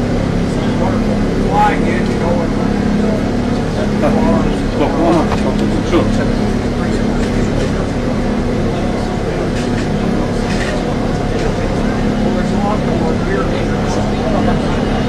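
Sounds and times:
bus engine humming: 0.0 - 15.0
murmured conversation: 0.0 - 15.0.

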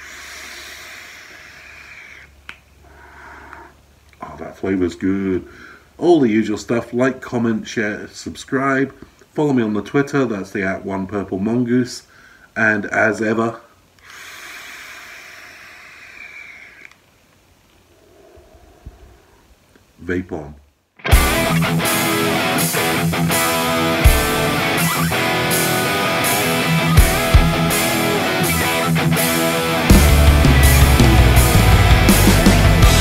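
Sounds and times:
e-cigarette draw hiss: 14.0 - 16.8.

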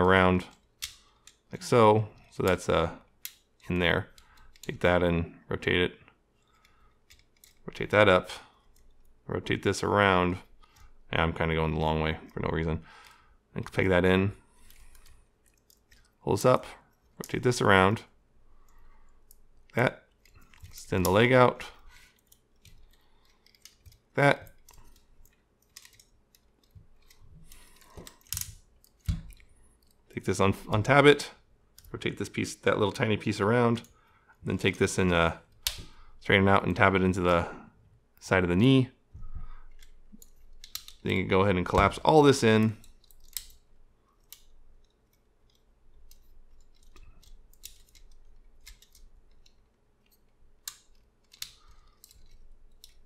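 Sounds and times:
plastic parts clicking and clacking: 0.5 - 1.5, 2.1 - 4.8, 6.5 - 7.8, 14.6 - 16.2, 18.6 - 30.9, 39.6 - 53.0.

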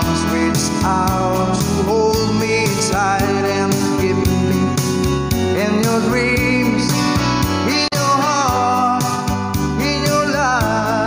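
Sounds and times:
rock ballad with singing: 0.0 - 11.0.

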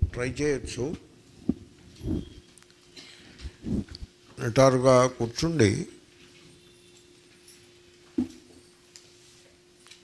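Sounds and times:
breath puffs into microphone: 3.2 - 4.1.

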